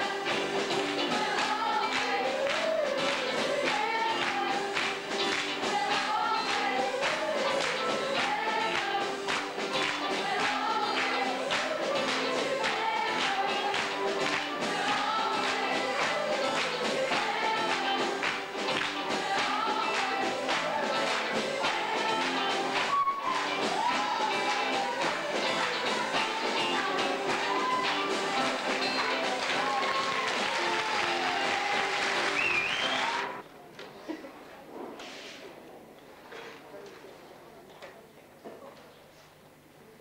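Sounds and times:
audience applauding: 0.0s - 33.4s
cast singing in chorus: 0.0s - 33.4s
music with steady beat: 0.0s - 33.4s.

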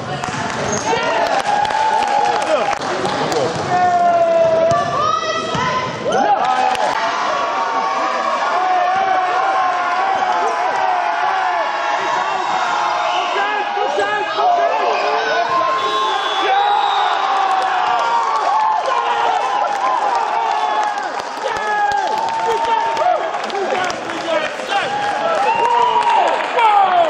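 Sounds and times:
voices shouting in a hall: 0.7s - 27.0s.

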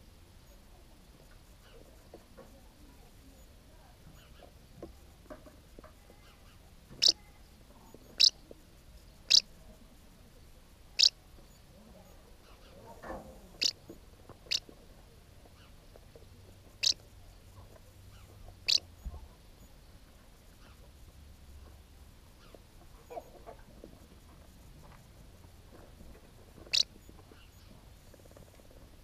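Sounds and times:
short sharp high bird calls: 7.0s - 7.2s, 8.2s - 8.4s, 9.3s - 9.5s, 11.0s - 11.2s, 16.8s - 17.0s, 18.7s - 18.9s.

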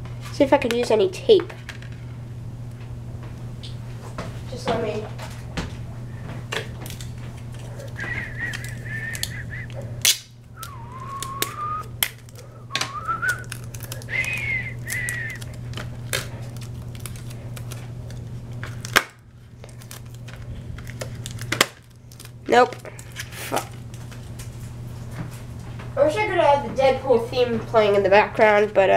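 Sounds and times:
low hum: 5.0s - 26.0s
sharp snap: 10.0s - 13.6s
paper rustling and crinkling: 12.1s - 25.0s.

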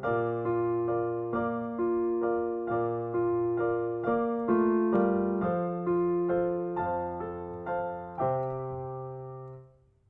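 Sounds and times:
piano-like keyboard chords: 0.0s - 10.0s.

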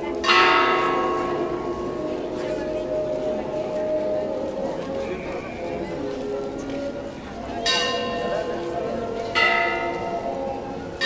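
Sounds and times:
church bell tolling: 0.0s - 11.0s
crowd voices: 0.0s - 11.0s.

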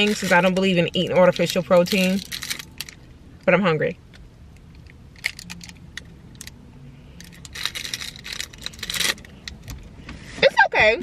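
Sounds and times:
wrapper crinkling: 1.3s - 3.0s, 7.2s - 9.3s.

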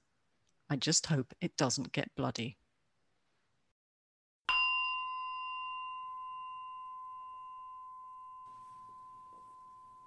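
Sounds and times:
fainter lower tone: 4.5s - 10.0s
struck bell ringing: 4.5s - 10.0s.

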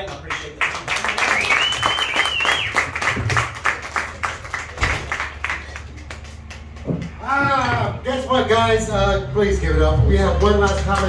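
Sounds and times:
audience applause: 0.0s - 7.3s, 10.4s - 11.0s
high whistle: 1.3s - 2.9s.

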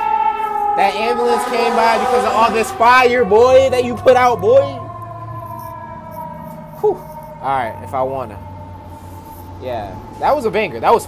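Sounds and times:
ambulance siren: 0.0s - 11.0s
low traffic rumble: 0.0s - 11.0s.

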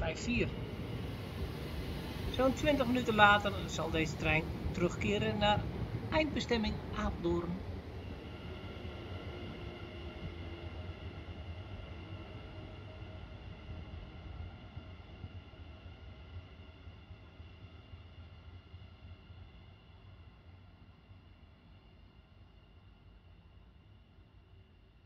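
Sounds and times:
electrical whine: 0.0s - 14.6s
electric train rumble: 0.0s - 25.0s.

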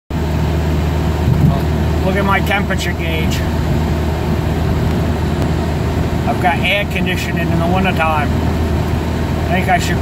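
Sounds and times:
car engine drone: 0.1s - 10.0s
road noise: 0.1s - 10.0s.

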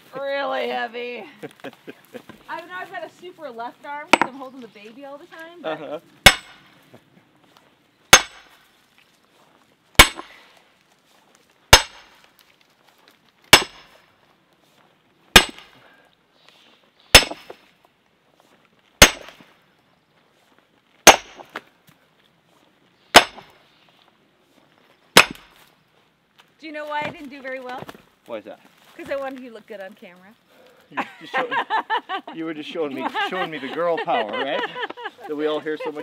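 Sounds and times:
sledgehammer striking steel wedge: 4.1s - 4.4s, 6.2s - 6.7s, 8.1s - 8.6s, 10.0s - 10.4s, 11.7s - 12.2s, 13.5s - 14.0s, 15.3s - 15.7s, 17.1s - 17.6s, 19.0s - 19.4s, 21.0s - 21.6s, 23.1s - 23.6s, 25.1s - 25.6s.

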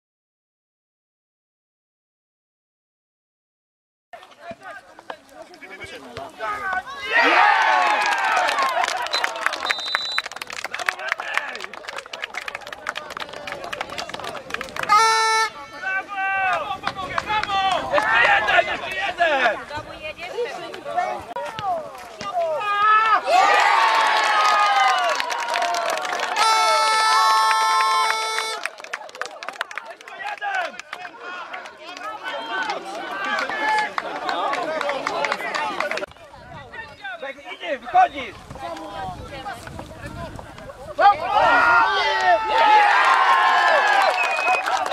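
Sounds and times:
players shouting: 4.2s - 11.7s, 13.3s - 28.8s, 29.8s - 36.1s, 40.9s - 44.9s.

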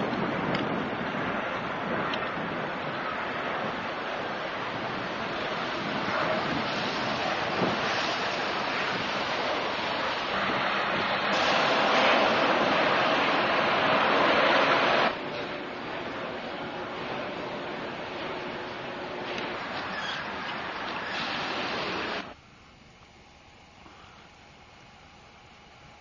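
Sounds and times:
steady rushing noise: 0.0s - 22.4s.

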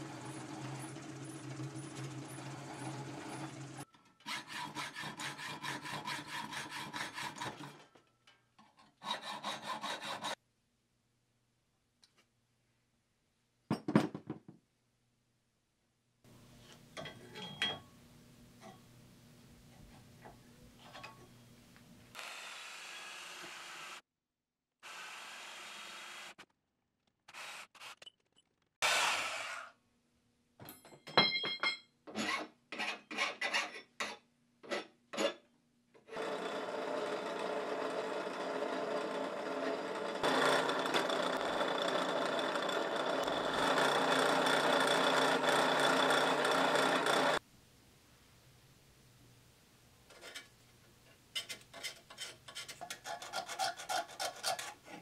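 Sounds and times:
drill press motor: 36.1s - 47.4s.

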